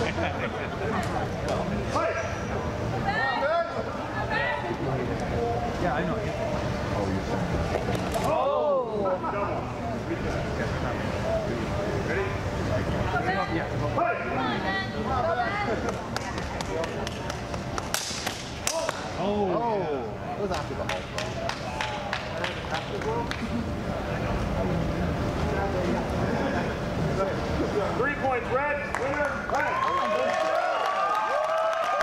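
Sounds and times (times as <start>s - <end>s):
indistinct talk in a large hall: 0.0s - 32.0s.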